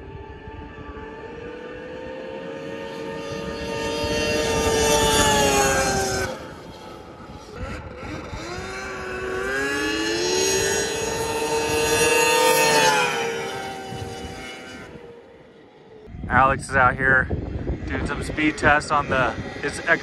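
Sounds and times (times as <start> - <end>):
snowmobile engine running: 0.0 - 20.0.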